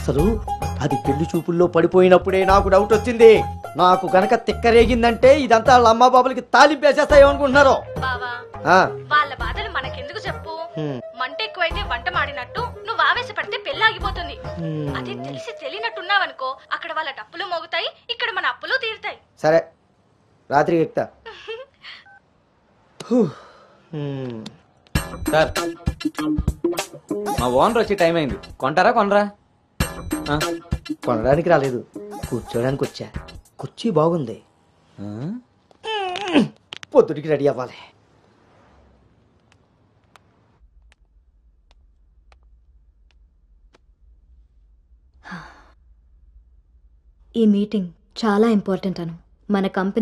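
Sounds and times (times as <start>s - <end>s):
person sighing: 10.8s - 11.0s, 14.6s - 15.2s, 23.0s - 24.6s, 45.2s - 45.8s
man's wordless voice sound: 27.3s - 29.3s, 30.2s - 35.6s.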